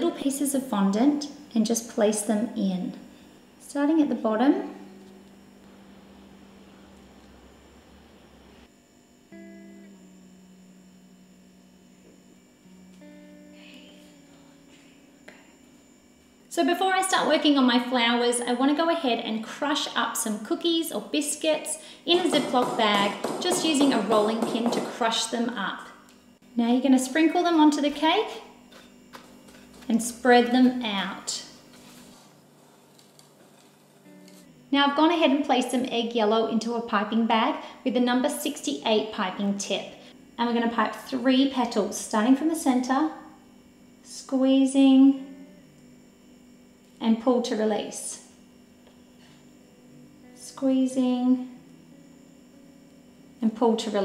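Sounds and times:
soft plucked guitar music: 4.5s - 8.0s, 9.3s - 15.9s, 27.3s - 36.7s.

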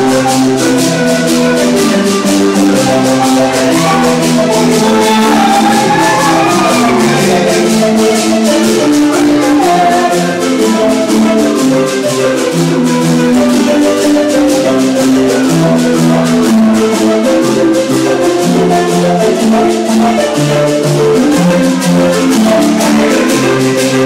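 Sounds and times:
marimba ensemble playing: 0.0s - 24.0s.

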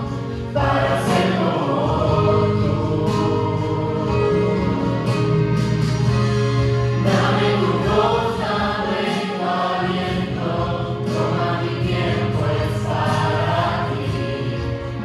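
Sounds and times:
group singing in harmony: 0.0s - 5.7s, 6.9s - 15.0s
low musical accompaniment: 0.0s - 15.0s.

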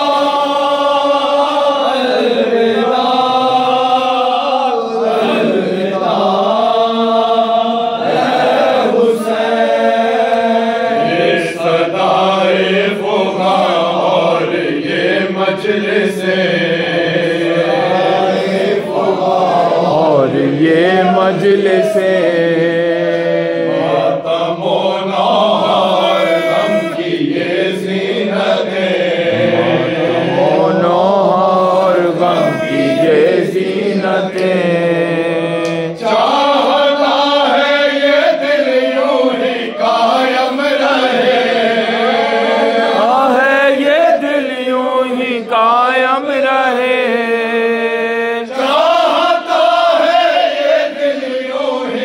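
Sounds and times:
men chanting into microphones: 0.0s - 52.0s
held low drone note: 29.3s - 31.5s.

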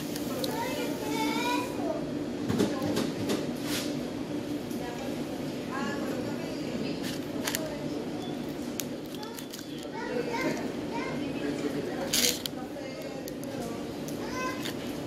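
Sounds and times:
steady low hum: 0.0s - 15.0s
indistinct background chatter: 4.5s - 15.0s.

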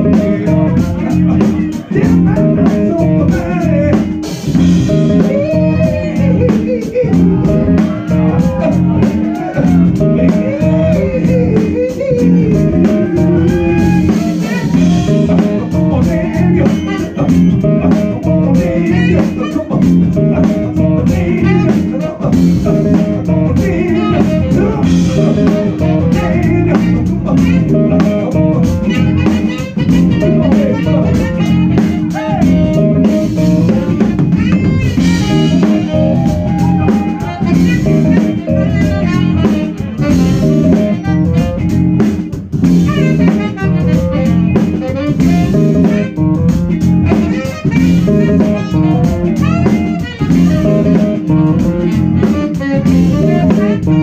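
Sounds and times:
drum kit: 0.0s - 54.0s
electric guitar: 0.0s - 54.0s
keyboards: 0.0s - 54.0s.

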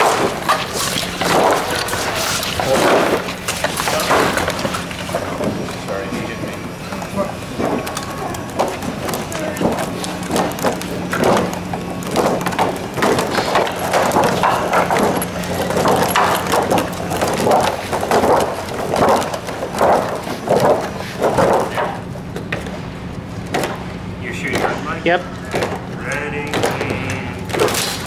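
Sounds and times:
steady low hum: 0.0s - 28.0s
puppet rods clattering and knocking: 7.0s - 22.0s.

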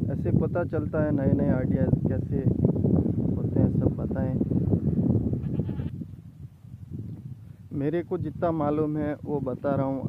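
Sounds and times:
goat bleating: 5.4s - 6.0s.

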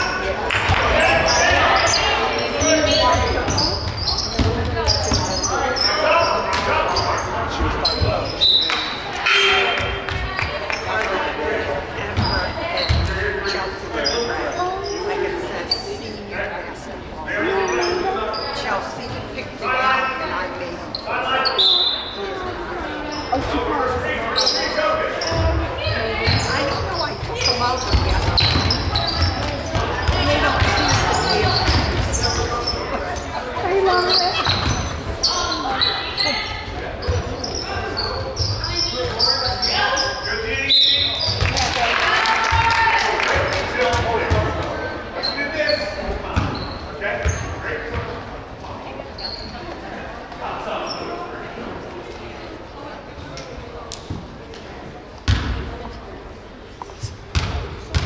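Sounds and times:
voices echoing in a gym: 0.0s - 58.0s
basketball bouncing on wooden floor: 55.3s - 55.6s.

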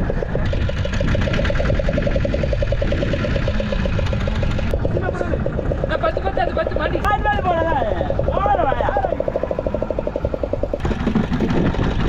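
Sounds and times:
boat engine running: 0.0s - 12.0s
people talking: 4.8s - 10.0s.

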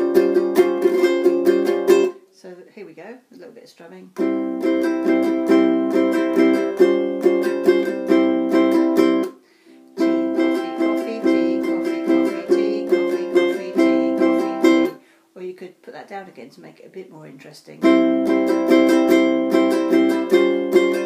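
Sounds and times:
ukulele strumming: 0.0s - 2.3s, 4.2s - 15.0s, 17.8s - 21.0s.

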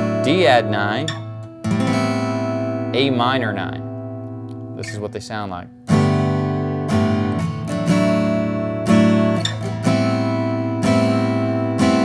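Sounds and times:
acoustic guitar chord strummed: 0.0s - 12.0s.

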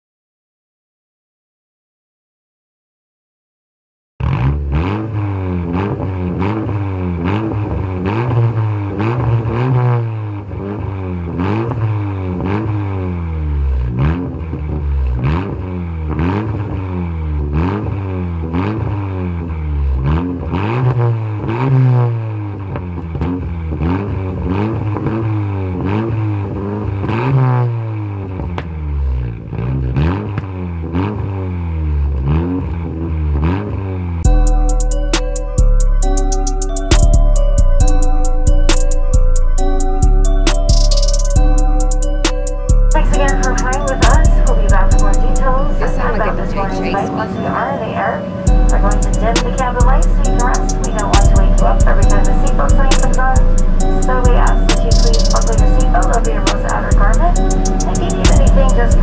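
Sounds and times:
car engine revving: 4.2s - 59.0s.

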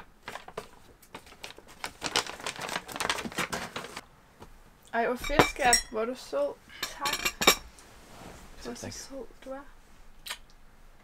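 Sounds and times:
paper crinkling and tearing: 0.2s - 4.0s.

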